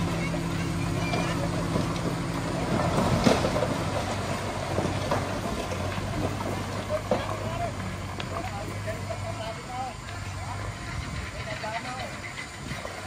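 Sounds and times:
diesel machinery running: 0:00.0 - 0:13.0.

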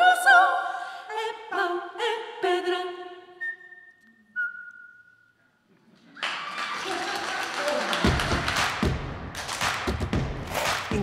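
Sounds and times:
a cappella vocal ensemble singing: 0:00.0 - 0:03.6
whistled note: 0:03.4 - 0:05.4
audience applauding: 0:06.0 - 0:11.0.

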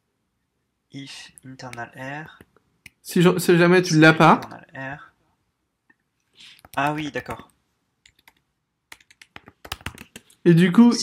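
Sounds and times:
typing on computer keyboard: 0:08.0 - 0:10.4.

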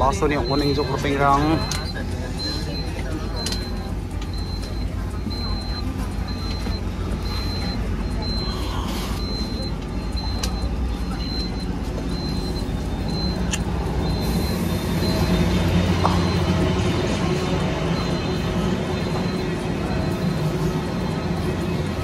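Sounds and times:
bus engine rumble: 0:00.0 - 0:22.0
door warning beeps: 0:00.0 - 0:22.0.

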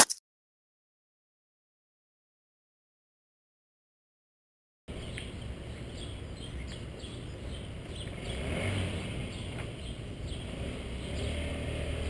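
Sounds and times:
vehicle engine running: 0:04.9 - 0:12.0.

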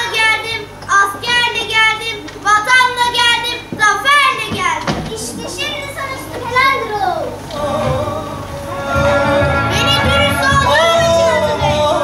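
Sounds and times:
child speaking: 0:00.0 - 0:07.4.

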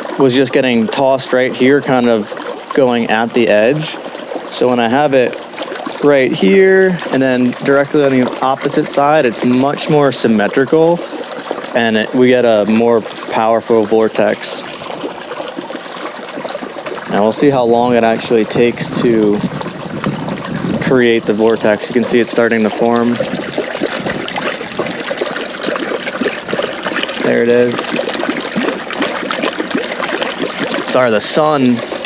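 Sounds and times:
water splashing and trickling: 0:00.0 - 0:32.0.

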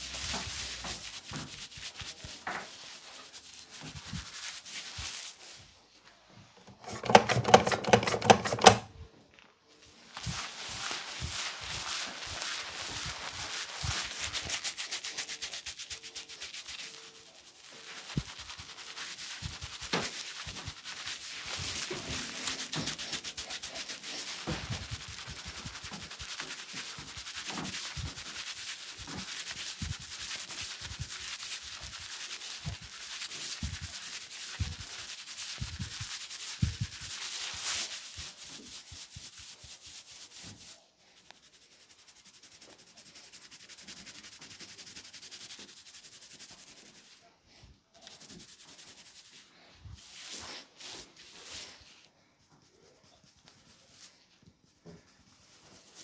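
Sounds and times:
hands rubbing head scratchy rustle: 0:00.0 - 0:56.0.

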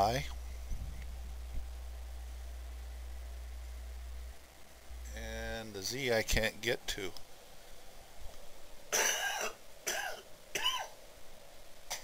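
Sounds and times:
man coughing: 0:08.9 - 0:10.9.

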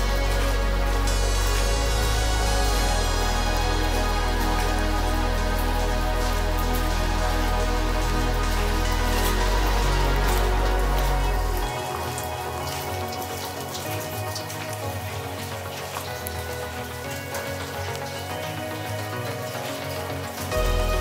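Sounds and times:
rain pattering on wet street: 0:00.0 - 0:21.0
soft background music: 0:00.0 - 0:21.0.

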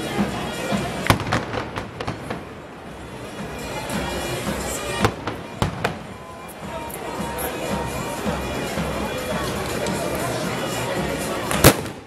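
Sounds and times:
background music: 0:00.0 - 0:12.0
crowd noise: 0:00.0 - 0:12.0.

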